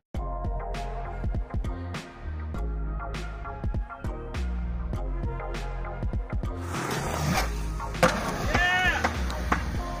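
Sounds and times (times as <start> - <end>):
background music: 0.1 - 10.0
skateboard wheels rolling on concrete: 6.4 - 10.0.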